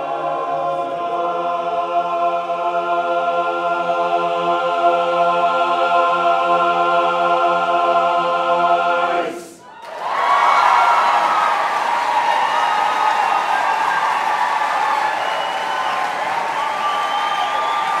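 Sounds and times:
male chorus singing a chord: 0.0s - 9.6s
audience applause and cheering: 9.7s - 18.0s.

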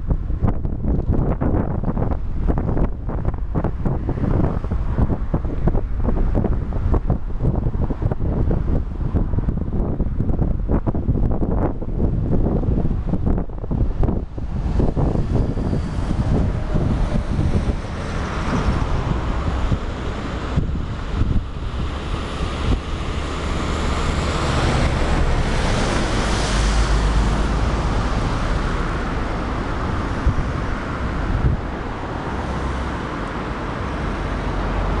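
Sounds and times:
wind buffeting microphone: 0.0s - 35.0s
river rushing over weir: 16.0s - 35.0s.

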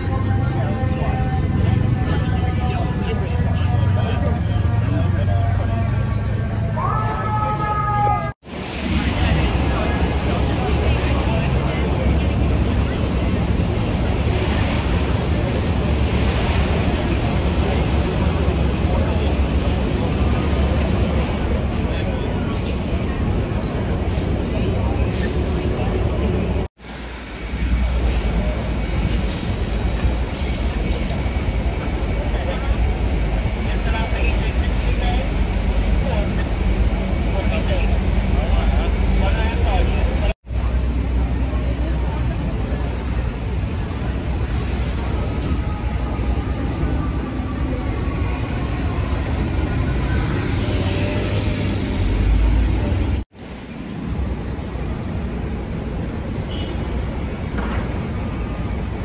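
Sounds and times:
indistinct voices: 0.0s - 26.7s, 27.3s - 53.2s
traffic rumble: 0.0s - 59.0s.

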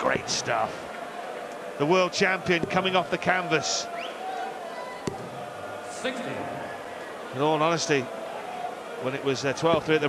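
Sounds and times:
crowd murmur in a hall: 0.0s - 2.3s, 3.8s - 10.0s.

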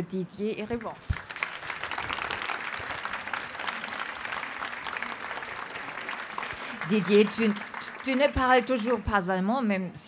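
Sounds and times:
audience clapping: 0.7s - 9.1s.

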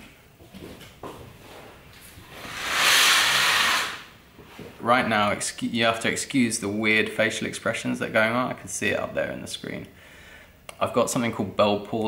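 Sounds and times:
breathy hiss: 2.4s - 4.1s.

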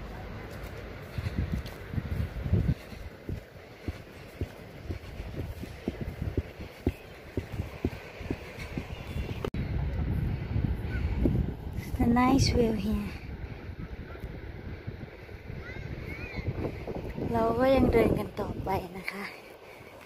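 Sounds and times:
footsteps on grass: 0.0s - 9.5s
wind buffeting microphone: 0.0s - 20.0s.

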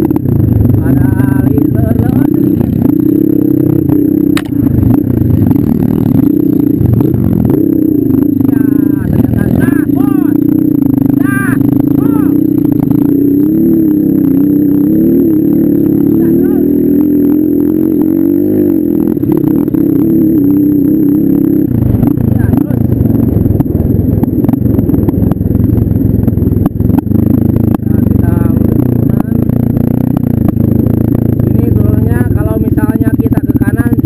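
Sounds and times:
dirt bike engine running: 0.0s - 34.0s.

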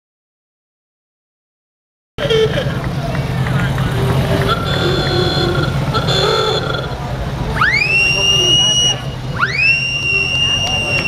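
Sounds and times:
klaxon car horn rising in pitch: 2.2s - 2.8s, 3.9s - 11.0s
car engines rumbling: 2.2s - 11.0s
crowd chatter: 2.2s - 11.0s.

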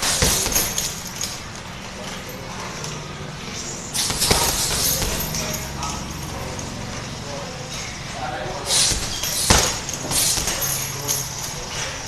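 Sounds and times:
faint voices: 0.0s - 12.0s
room noise: 0.0s - 12.0s.

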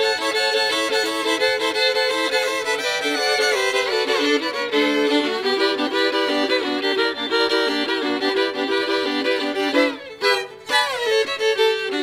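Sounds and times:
two fiddles playing a duet: 0.0s - 12.0s.

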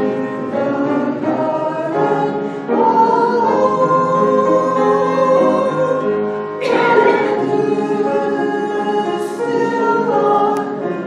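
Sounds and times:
women singing a hymn: 0.0s - 11.0s.

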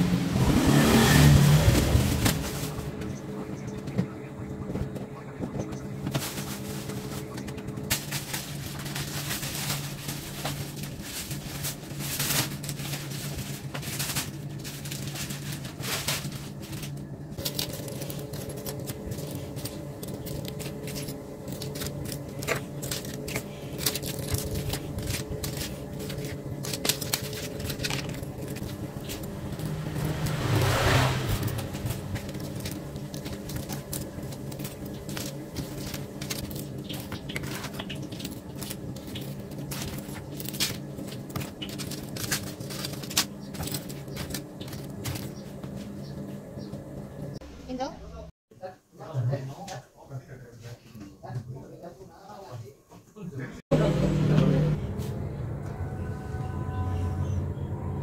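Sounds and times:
low hum: 1.3s - 48.3s, 53.7s - 58.0s.

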